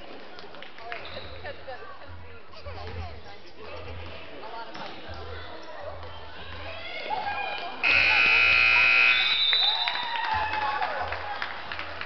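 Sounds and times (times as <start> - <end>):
crowd voices: 0.0 - 12.0
scoreboard buzzer: 7.8 - 9.4.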